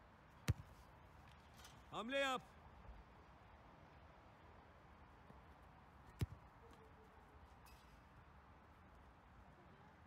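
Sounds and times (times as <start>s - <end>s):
football kicked thud: 0.4s - 0.8s.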